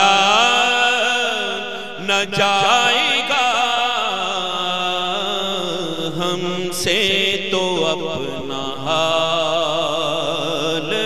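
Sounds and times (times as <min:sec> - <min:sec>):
man singing devotional poem: 0:00.0 - 0:11.0.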